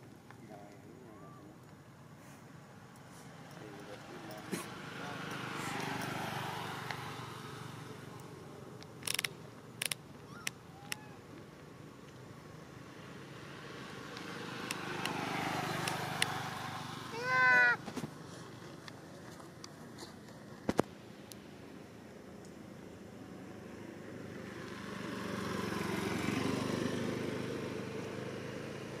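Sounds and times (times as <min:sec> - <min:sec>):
vehicles passing: 0:00.0 - 0:29.0
sharp clicks: 0:08.2 - 0:12.2, 0:15.8 - 0:16.4.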